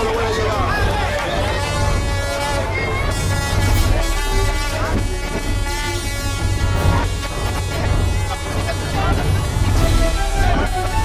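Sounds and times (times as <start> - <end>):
crowd voices: 0.0 - 11.0
vehicle horns blasting: 1.4 - 11.0.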